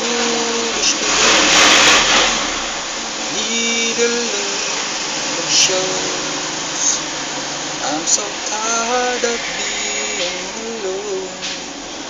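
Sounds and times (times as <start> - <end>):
man singing a long note: 0.0 - 1.4, 3.3 - 7.1, 7.8 - 11.6
loud steady rushing noise: 0.0 - 12.0.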